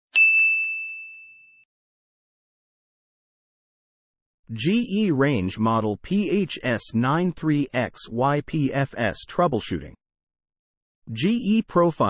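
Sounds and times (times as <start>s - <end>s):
bright bell-like ding: 0.1s - 1.7s.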